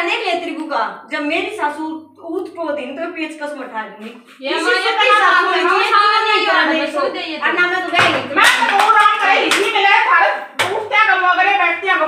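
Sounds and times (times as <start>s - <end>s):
women talking loudly: 3.8s - 12.0s.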